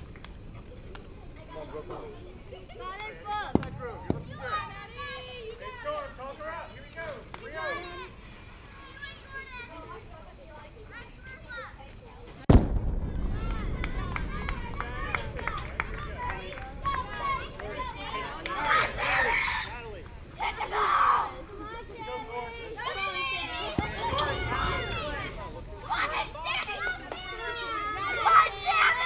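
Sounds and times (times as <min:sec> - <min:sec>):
chatter of people: 0:00.5 - 0:12.5, 0:13.2 - 0:29.0
steady low rumble: 0:12.5 - 0:19.2, 0:21.3 - 0:26.6.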